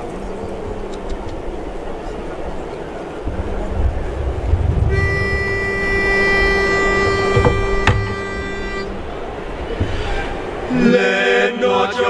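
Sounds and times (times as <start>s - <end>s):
pitch pipe note: 4.8s - 9.2s.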